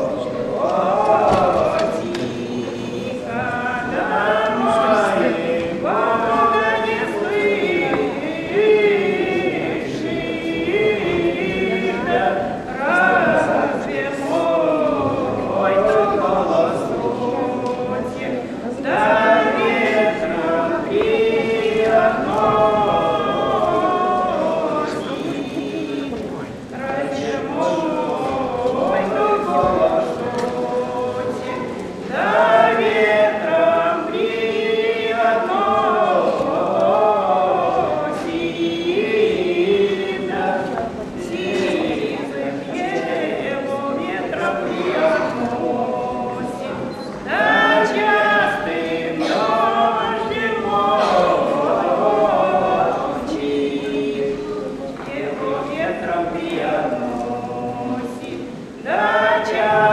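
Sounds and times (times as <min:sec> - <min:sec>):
woman and man singing folk song: 0:00.0 - 0:59.9.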